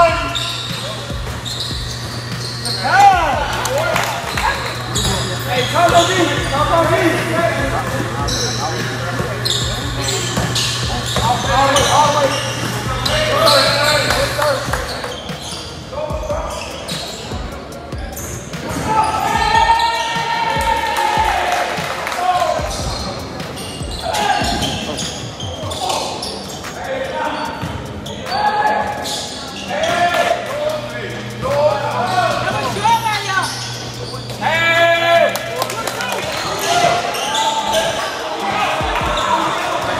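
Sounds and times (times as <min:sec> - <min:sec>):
players and spectators calling out: 0:00.0 - 0:39.9.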